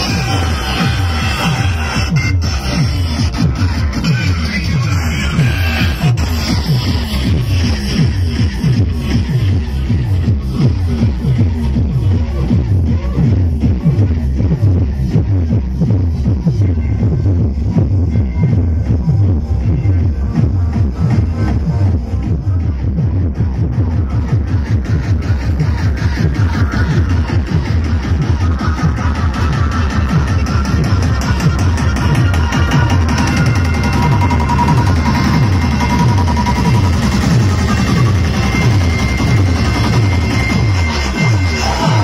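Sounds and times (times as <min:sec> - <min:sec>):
electronic dance music heavy bass: 0:00.0 - 0:42.0.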